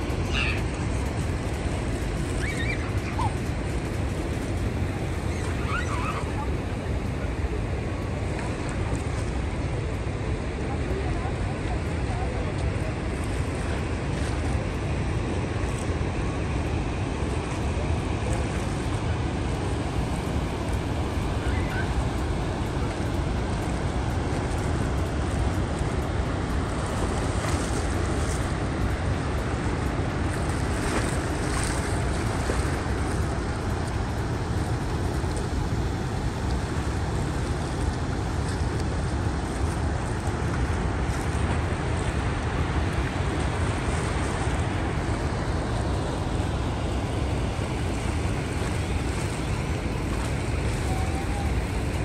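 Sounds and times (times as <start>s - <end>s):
river rushing: 0.0s - 52.0s
wind on microphone: 0.0s - 52.0s.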